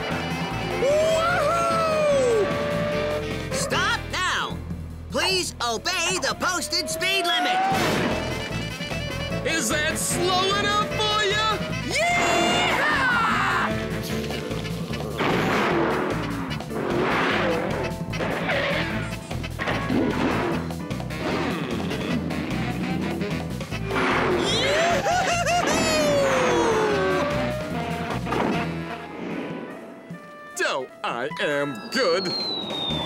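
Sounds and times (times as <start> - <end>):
cartoon music with steady beat: 7.8 - 33.0
whistle-like pitch glides: 31.8 - 33.0.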